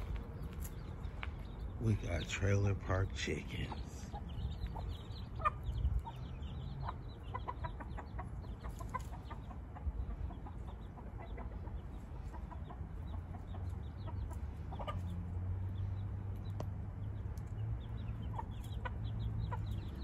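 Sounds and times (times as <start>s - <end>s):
baby chicks peeping: 0.0s - 20.0s.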